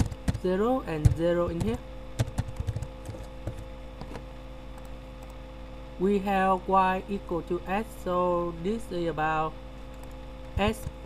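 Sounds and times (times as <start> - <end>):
computer keyboard keys clicking: 0.0 - 0.4, 1.0 - 4.2
steady electrical hum: 0.0 - 11.0.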